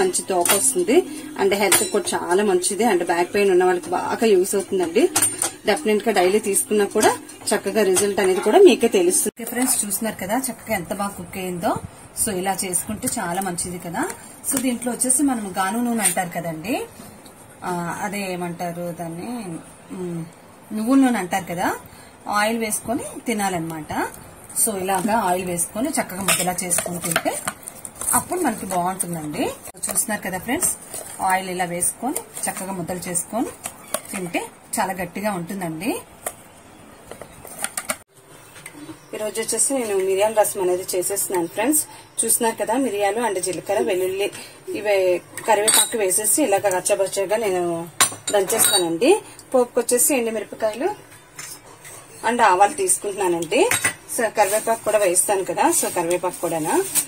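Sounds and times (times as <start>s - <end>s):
woman talking: 0.0s - 17.0s, 17.6s - 36.1s, 39.1s - 51.1s, 52.2s - 57.0s.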